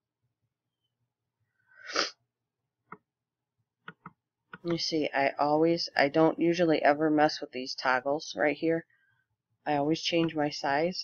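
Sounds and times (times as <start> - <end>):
person sneezing: 1.8 - 2.2.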